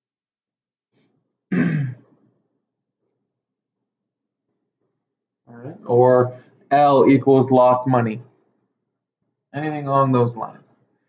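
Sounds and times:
man clearing throat: 1.5 - 2.0.

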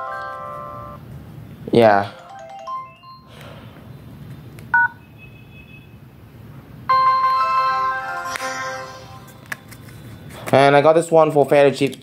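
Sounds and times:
phone electronic chime: 2.2 - 3.3, 6.9 - 9.4.

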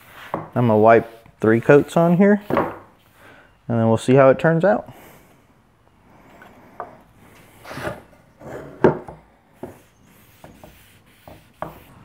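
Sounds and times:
rubbing strokes on wood: 0.0 - 3.2, 9.6 - 12.0.

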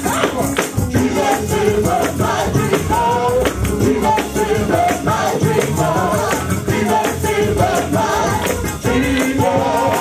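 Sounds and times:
drums: 0.0 - 10.0
keyboard: 0.0 - 10.0
tambourine: 0.0 - 10.0
women singing together: 0.9 - 10.0.

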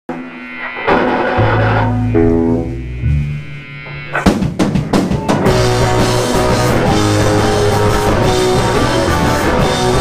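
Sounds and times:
rock band playing: 0.1 - 10.0.

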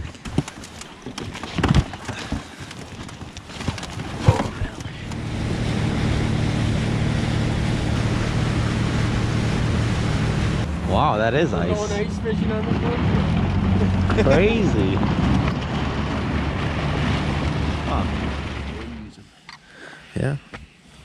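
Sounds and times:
knocks and handling sounds: 0.0 - 5.1
water rushing along hull: 0.0 - 19.1
wind on microphone: 4.0 - 11.0
boat motor drone: 4.3 - 19.2.

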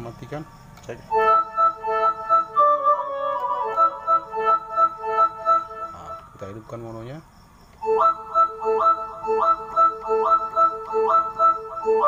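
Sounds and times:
keyboard flute voice melody: 1.1 - 6.4, 7.8 - 12.0.

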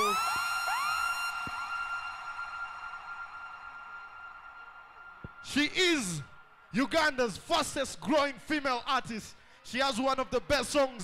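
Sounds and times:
siren-like sound effect: 0.0 - 5.1.

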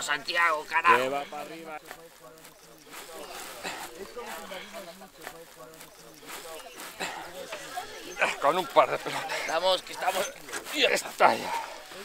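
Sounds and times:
faint low voices: 0.6 - 12.0
straw bale rustling and scraping: 1.8 - 12.0.

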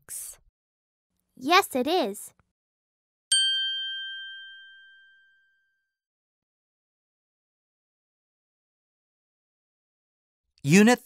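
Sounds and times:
bell-like chime: 3.3 - 6.0.

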